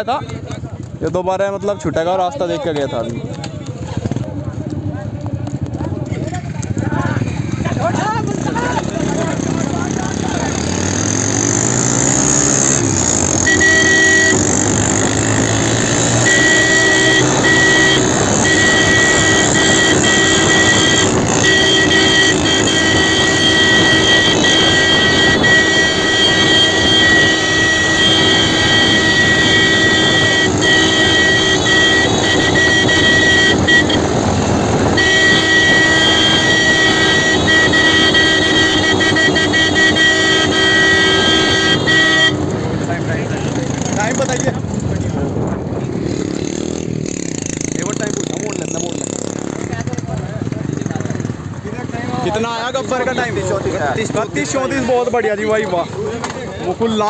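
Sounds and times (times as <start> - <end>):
motorcycle engine revving: 2.9 - 57.0
vehicle horn held: 12.8 - 42.6.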